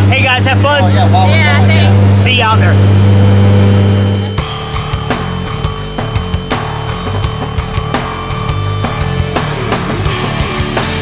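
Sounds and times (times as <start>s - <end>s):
plane engine and propeller drone: 0.0s - 7.7s.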